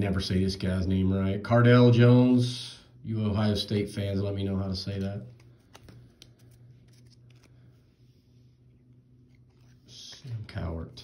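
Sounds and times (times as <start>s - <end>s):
steady low hum: 0.0s - 11.0s
cardboard cards clicking and scraping: 5.4s - 7.6s.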